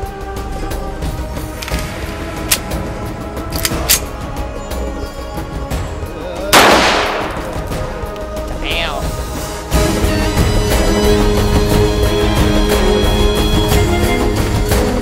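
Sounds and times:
background music: 0:00.0 - 0:15.0
pistol shot: 0:06.6 - 0:07.7.

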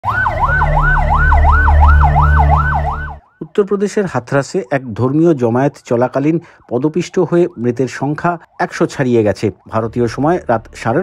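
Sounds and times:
ambulance siren wailing: 0:00.0 - 0:04.2, 0:05.4 - 0:11.0
low rumble: 0:00.3 - 0:03.2.

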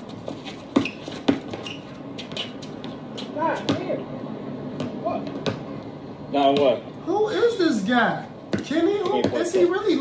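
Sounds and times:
basketball bouncing: 0:00.7 - 0:03.0, 0:03.6 - 0:04.0, 0:04.8 - 0:05.7, 0:08.5 - 0:09.6.

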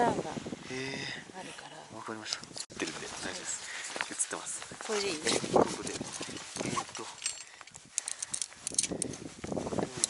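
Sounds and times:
carabiner clinking: 0:02.2 - 0:04.2, 0:04.9 - 0:10.0.

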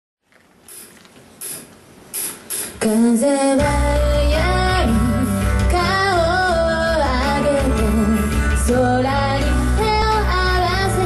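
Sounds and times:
live venue room noise: 0:00.3 - 0:11.0.

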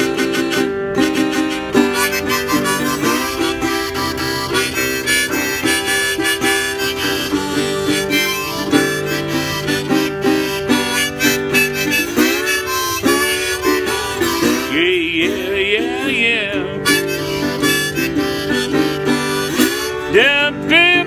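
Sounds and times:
blues harmonica wailing: 0:00.0 - 0:21.0
slide resonator guitar: 0:00.0 - 0:21.0.

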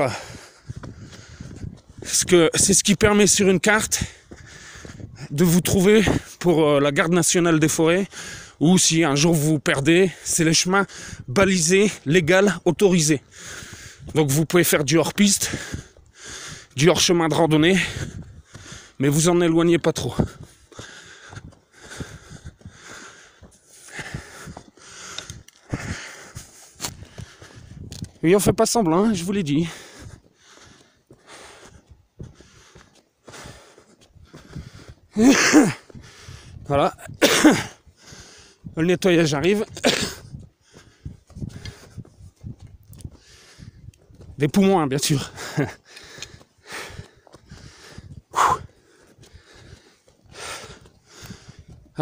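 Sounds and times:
man breathing hard: 0:00.0 - 0:02.1, 0:04.0 - 0:05.4, 0:08.0 - 0:08.6, 0:10.1 - 0:11.3, 0:13.2 - 0:14.2, 0:15.4 - 0:16.8, 0:17.7 - 0:19.2, 0:20.1 - 0:28.2, 0:29.0 - 0:38.8, 0:40.1 - 0:44.4, 0:45.2 - 0:52.0
footsteps on stony path: 0:00.0 - 0:52.0.

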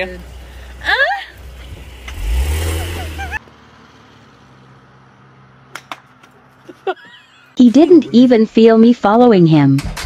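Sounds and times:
car engine revving: 0:00.2 - 0:05.7.

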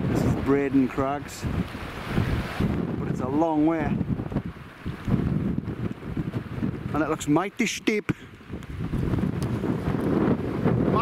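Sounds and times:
wind buffeting the microphone: 0:00.0 - 0:11.0.

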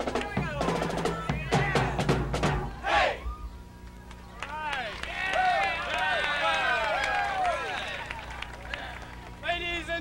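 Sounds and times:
steady low hum: 0:00.0 - 0:10.0
people calling and whooping: 0:00.1 - 0:09.7.

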